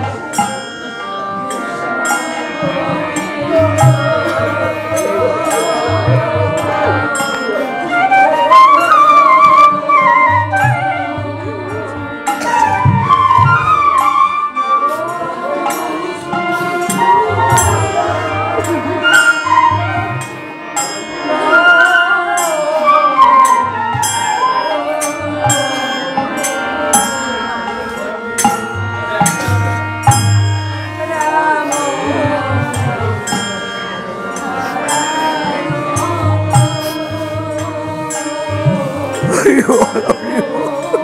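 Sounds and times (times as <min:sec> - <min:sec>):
bamboo flute melody: 0:04.6 - 0:20.4, 0:21.3 - 0:26.0.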